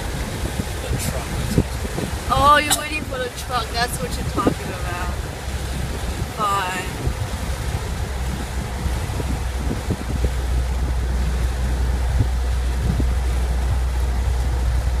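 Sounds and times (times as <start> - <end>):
car cabin road rumble: 0.0 - 15.0.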